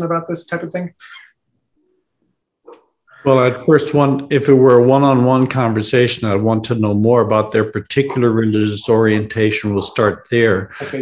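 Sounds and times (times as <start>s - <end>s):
person speaking: 3.1s - 11.0s.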